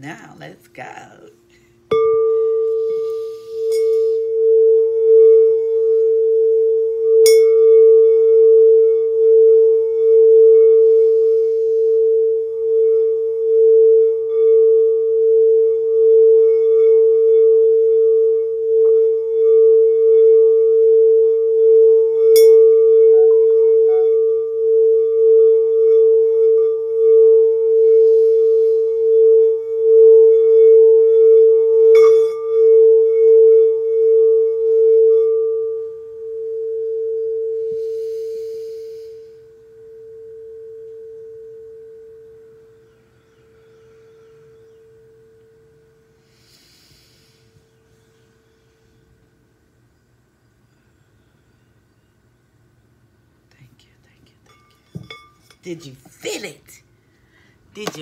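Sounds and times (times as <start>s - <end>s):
singing bowl tone: 0.0s - 53.5s, 54.1s - 58.0s.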